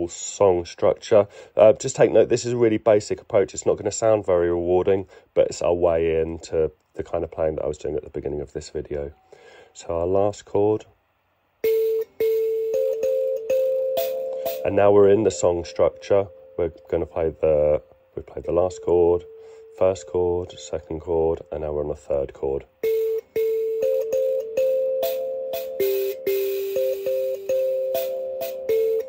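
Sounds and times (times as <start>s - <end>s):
mbira keys plucked with buzzy rattle: 11.6s - 16.3s, 22.8s - 29.0s.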